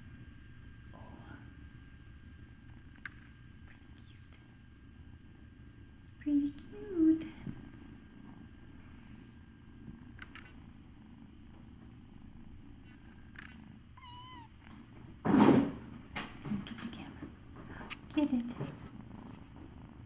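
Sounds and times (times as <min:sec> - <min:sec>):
kitten purring: 0:00.0 - 0:20.0
kitten mewing: 0:13.4 - 0:14.6.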